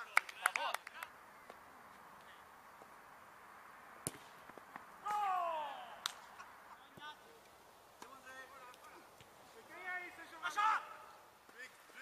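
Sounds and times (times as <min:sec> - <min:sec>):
players shouting high calls: 0:05.0 - 0:06.0, 0:09.7 - 0:11.3.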